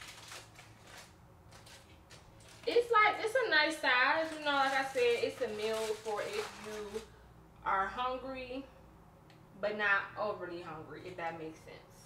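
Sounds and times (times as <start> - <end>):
aluminum foil crinkling: 0.0 - 7.1.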